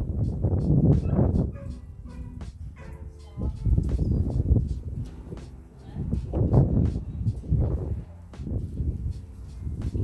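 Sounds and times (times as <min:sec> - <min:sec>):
low rumbling: 0:00.0 - 0:10.0.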